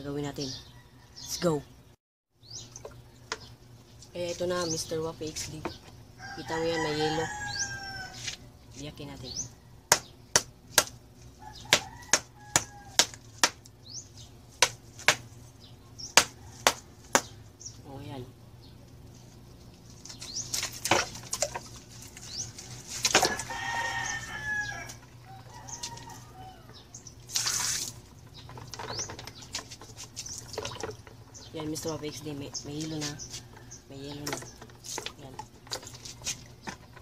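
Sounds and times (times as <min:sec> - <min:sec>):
ice water sloshing: 0:19.8 - 0:26.3, 0:27.1 - 0:37.0.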